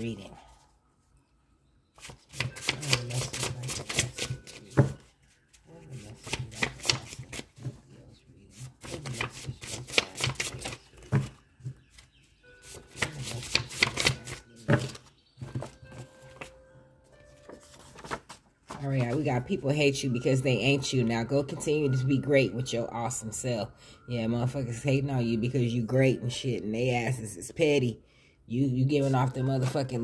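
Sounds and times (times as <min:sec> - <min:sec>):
paper cards being shuffled: 0:02.0 - 0:07.8, 0:08.5 - 0:16.6, 0:17.3 - 0:19.3.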